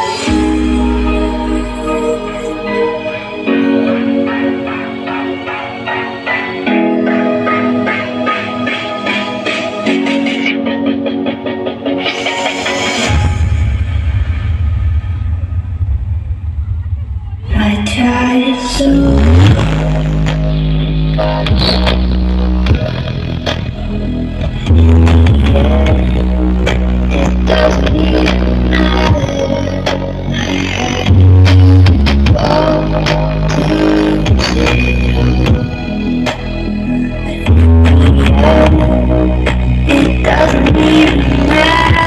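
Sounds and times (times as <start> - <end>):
heavy bass music: 0.0 - 42.0
steady deep bass note: 0.2 - 4.6, 13.0 - 42.0.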